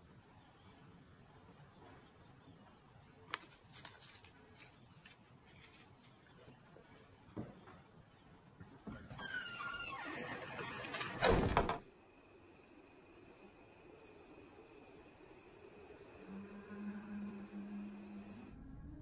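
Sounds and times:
door creaking: 0:08.8 - 0:11.9
insect chirping: 0:11.8 - 0:18.5
faint steady high tone: 0:11.8 - 0:19.0
low sustained drone: 0:15.7 - 0:19.0.

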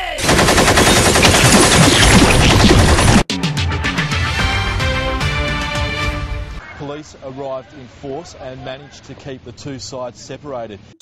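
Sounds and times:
machine-gun fire: 0:00.2 - 0:03.3.

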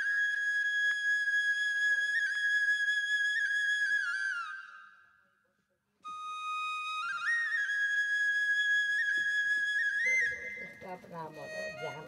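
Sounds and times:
flute long high note: 0:06.1 - 0:12.0.

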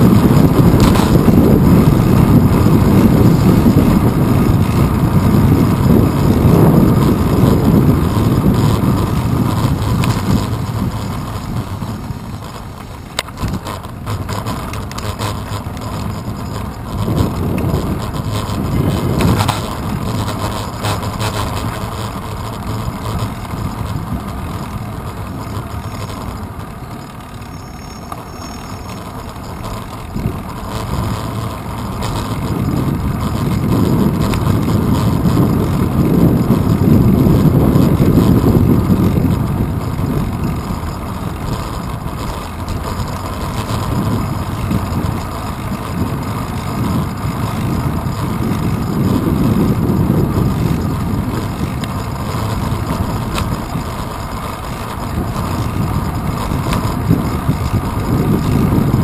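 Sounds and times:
wind and road rumble: 0:00.0 - 0:59.0.

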